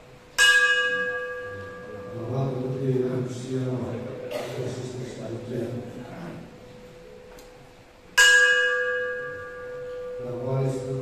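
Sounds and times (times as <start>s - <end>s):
hanging bell ringing: 0.3s - 4.2s, 8.2s - 11.0s.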